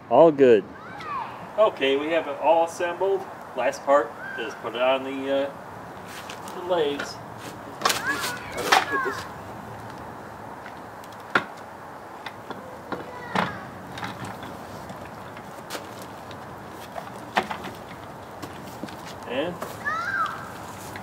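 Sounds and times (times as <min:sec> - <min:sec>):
chair parts knocking and clicking: 0:06.3 - 0:09.2, 0:10.6 - 0:19.8.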